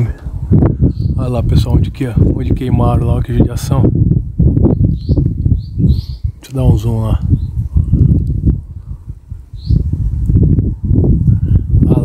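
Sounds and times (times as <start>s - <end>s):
wind buffeting microphone: 0.0s - 12.0s
bird chirp: 0.8s - 1.4s, 4.6s - 8.2s, 9.5s - 10.0s.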